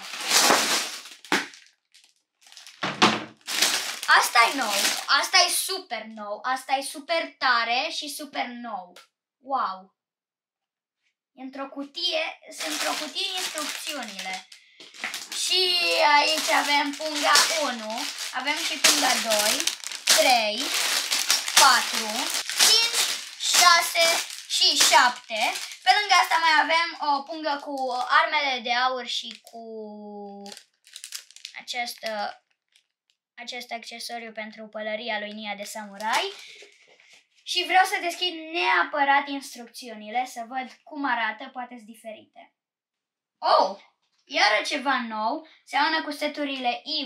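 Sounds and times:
plastic and cardboard tumbling: 0.0 - 1.6, 2.5 - 5.1, 12.6 - 26.8
plastic bags crinkling: 0.0 - 5.6, 12.1 - 28.2, 29.2 - 29.6, 30.4 - 32.9, 35.6 - 37.4
child speaking: 4.0 - 9.8, 11.4 - 14.5, 15.3 - 30.6, 31.6 - 32.4, 33.4 - 36.6, 37.5 - 42.4, 43.4 - 47.0.

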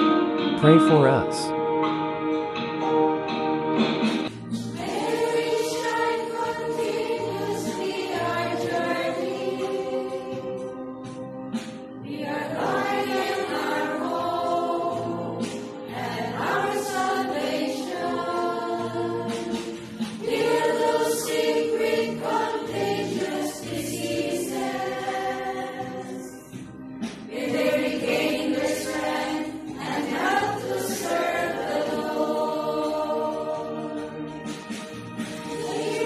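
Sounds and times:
choir singing a hymn: 4.5 - 36.0.

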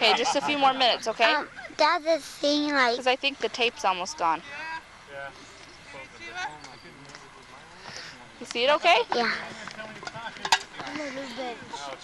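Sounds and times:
people calling and talking: 0.0 - 12.0.

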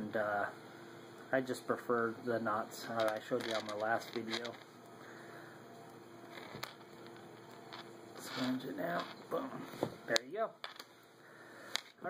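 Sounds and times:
low steady hum: 0.0 - 12.0
fingers handling fishing line: 2.9 - 4.6, 6.3 - 9.4.

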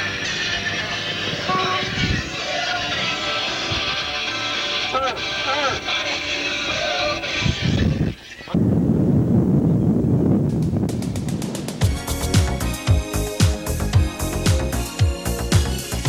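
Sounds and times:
street and traffic noise: 0.0 - 8.6.

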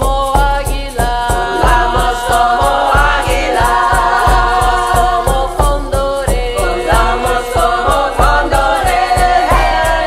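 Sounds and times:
low drum beat: 0.0 - 10.0
rhythmic high rattle: 0.0 - 10.0
voices singing in harmony: 0.3 - 10.0.

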